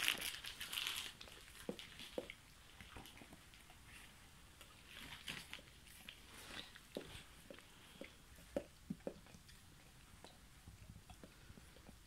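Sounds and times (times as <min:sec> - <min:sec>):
crinkly sheet rustling: 0:00.0 - 0:02.2
dog licking: 0:01.2 - 0:12.0.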